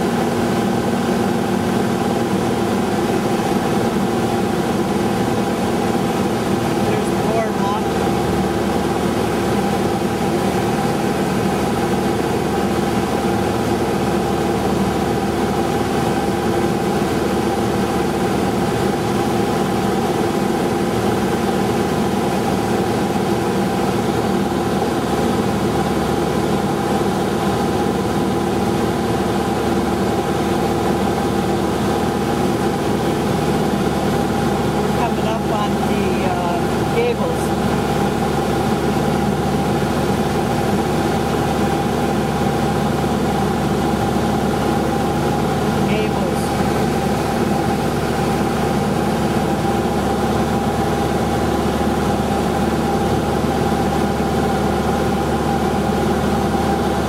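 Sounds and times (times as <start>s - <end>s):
aircraft engine drone in cabin: 0.0s - 57.0s.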